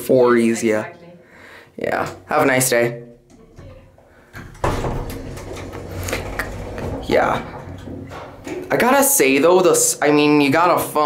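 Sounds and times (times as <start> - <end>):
elevator door closing with thud: 3.3 - 9.4
low hum with rattle: 3.3 - 9.4.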